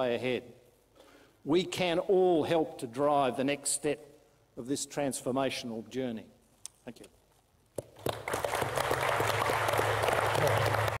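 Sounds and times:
audience applauding: 8.0 - 11.0.

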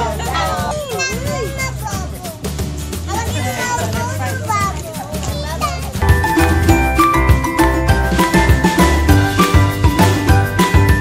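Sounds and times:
young children chattering: 0.0 - 6.1
background music with bass line: 0.0 - 11.0.

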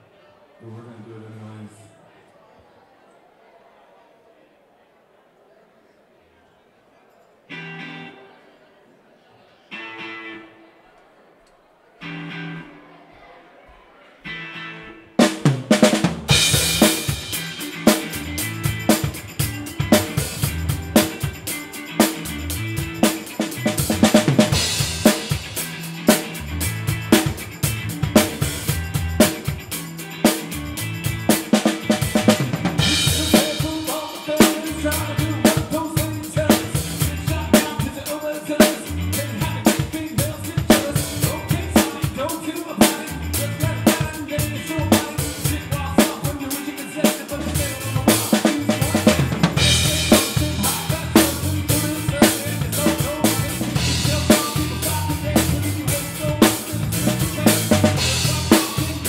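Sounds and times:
bass and guitar: 7.5 - 8.2, 12.0 - 12.8, 14.3 - 59.0
snare drum: 15.2 - 18.2.

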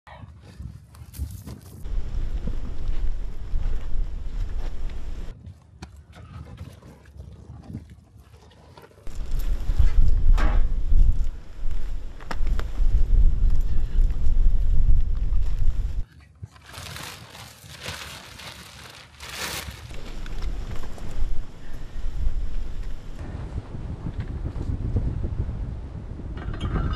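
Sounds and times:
footsteps: 0.6 - 5.4
wind buffeting microphone: 1.4 - 5.5, 9.1 - 16.0, 19.9 - 26.9
netting and brush rustling: 16.5 - 21.8.

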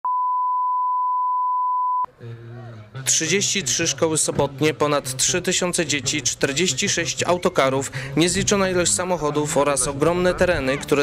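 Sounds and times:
steady line-up tone beep: 0.0 - 2.1.

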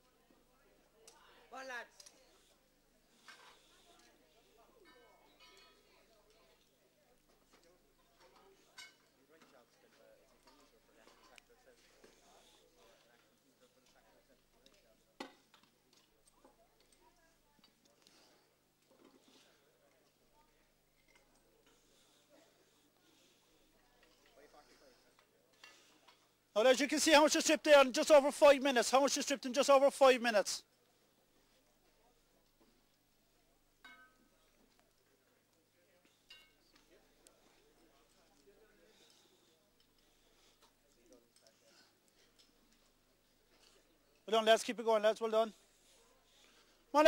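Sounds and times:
faint murmuring voices: 0.0 - 26.5, 30.6 - 44.2.

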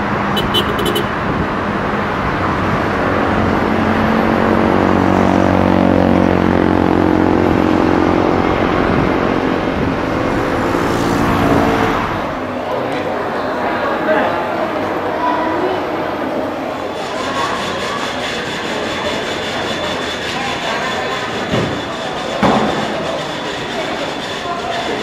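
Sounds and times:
steady engine noise: 0.0 - 15.2, 15.8 - 25.0.

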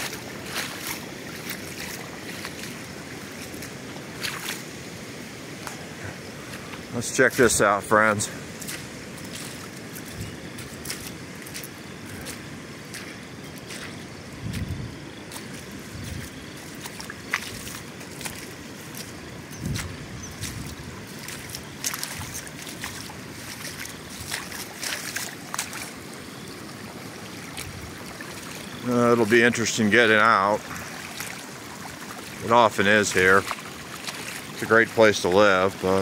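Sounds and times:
footsteps on wet gravel: 0.0 - 36.0
water trickling over gravel: 0.0 - 36.0.

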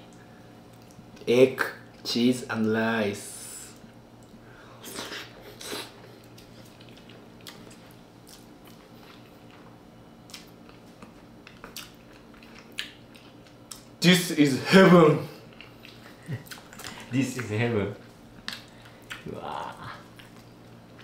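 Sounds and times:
faint steady hum: 0.0 - 21.0
person chewing food: 4.2 - 13.9, 15.4 - 21.0.

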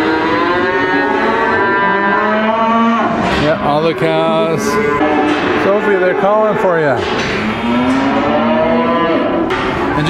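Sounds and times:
cattle mooing: 0.0 - 9.6.

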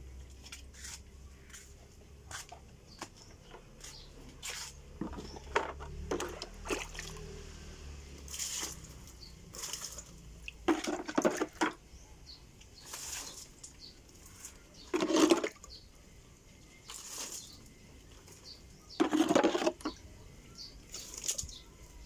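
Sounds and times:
water splashing onto plants: 5.8 - 11.8, 12.6 - 15.7, 16.8 - 17.8, 20.8 - 22.0.

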